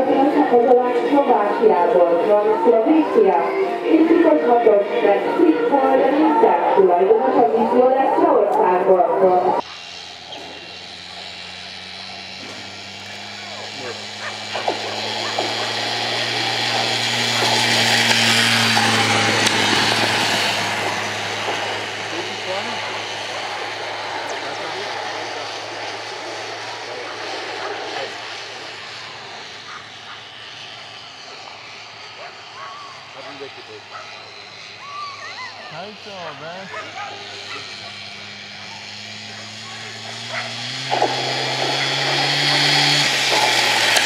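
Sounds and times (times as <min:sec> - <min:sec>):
spectators shouting and cheering: 0:00.0 - 0:09.8.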